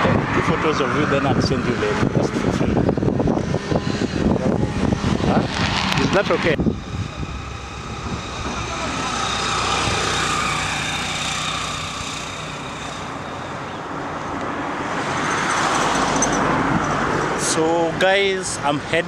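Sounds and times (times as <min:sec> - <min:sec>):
road traffic passing: 0:00.0 - 0:19.0.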